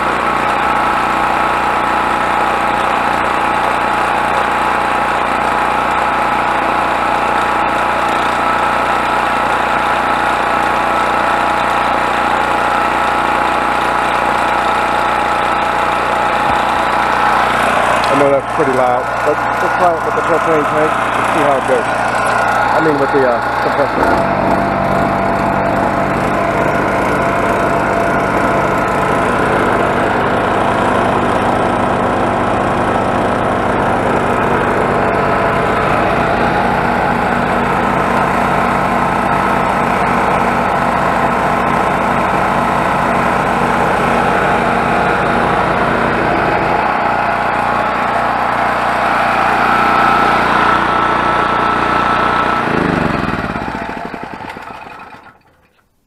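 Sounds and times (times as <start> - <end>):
generator engine running: 0.0 - 55.7
air compressor pump chugging: 0.0 - 55.8.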